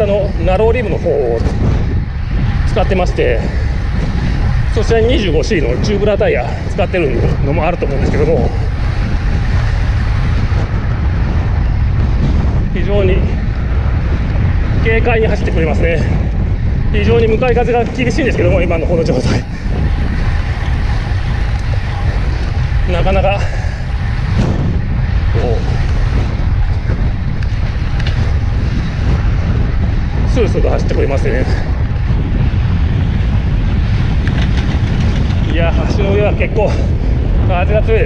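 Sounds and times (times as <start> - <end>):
wind rumbling on microphone: 0.0 - 38.0.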